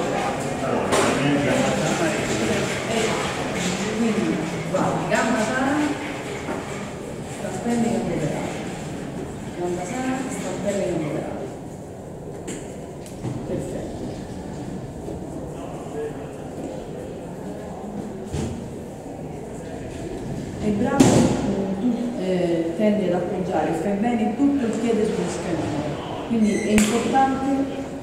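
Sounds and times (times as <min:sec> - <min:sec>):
stairwell background noise: 0:00.0 - 0:28.0.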